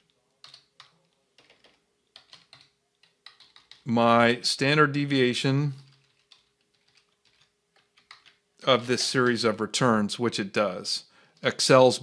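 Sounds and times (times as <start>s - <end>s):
computer keyboard typing: 0.0s - 3.9s, 5.7s - 9.6s.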